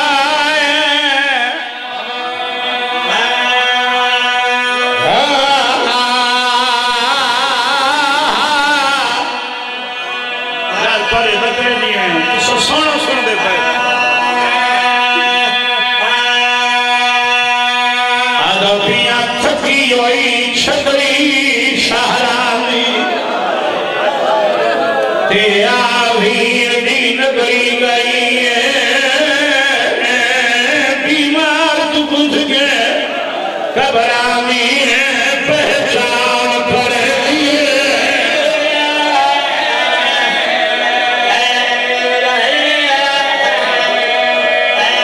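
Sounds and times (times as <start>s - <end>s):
man chanting with vibrato: 0.0s - 23.4s, 25.3s - 45.0s.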